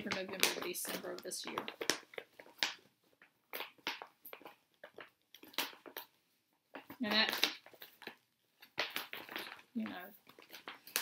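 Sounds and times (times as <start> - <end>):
plastic bags rustling: 0.0 - 6.0, 6.8 - 11.0.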